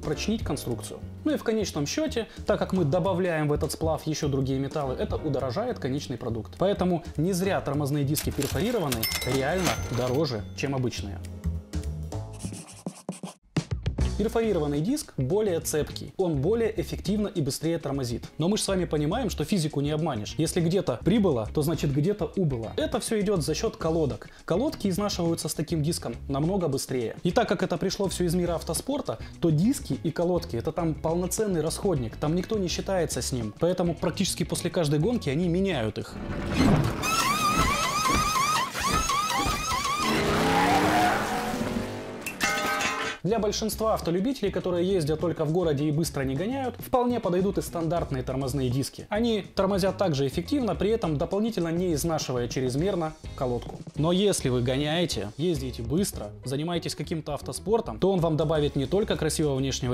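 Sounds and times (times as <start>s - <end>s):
falling tone: 36.2s - 42.4s
wavering squeal: 37.0s - 41.5s.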